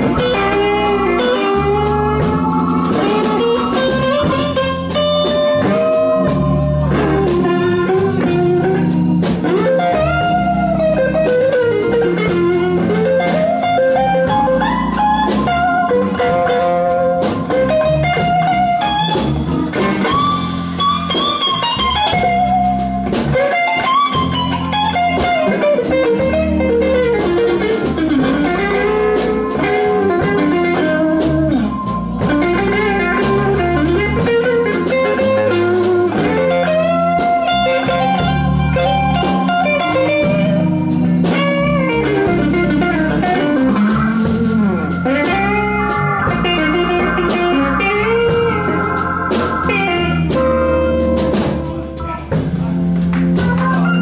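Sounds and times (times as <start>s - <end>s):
bass and drums: 0.0s - 54.0s
blues electric guitar solo: 0.0s - 54.0s.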